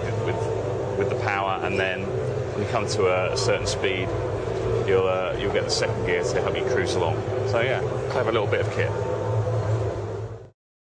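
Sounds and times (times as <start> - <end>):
exhibition hall background drone: 0.0 - 10.6.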